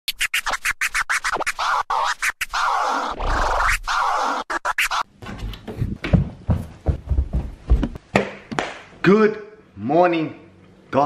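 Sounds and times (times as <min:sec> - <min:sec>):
turntable scratching: 0:00.1 - 0:05.1
footsteps on wooden floor: 0:05.2 - 0:08.2.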